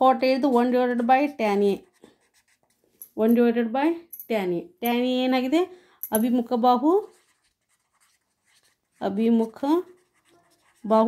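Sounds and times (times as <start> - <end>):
woman speaking: 0.0 - 1.9, 3.2 - 7.1, 9.0 - 10.0, 10.8 - 11.0
pen scratching on paper: 1.4 - 2.8, 6.8 - 11.0.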